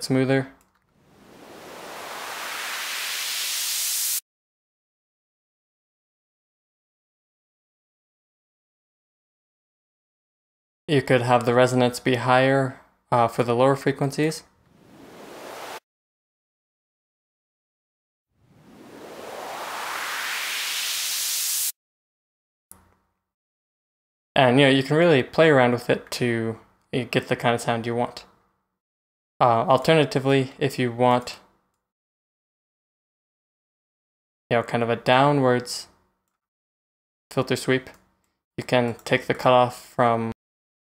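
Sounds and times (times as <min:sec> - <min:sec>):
white-noise filter sweep: 0:01.0 - 0:04.2, 0:14.7 - 0:15.8, 0:18.4 - 0:21.7.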